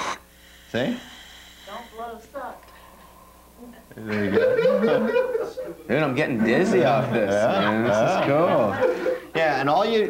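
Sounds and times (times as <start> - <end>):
breathing through scuba regulator: 0.0 - 2.0.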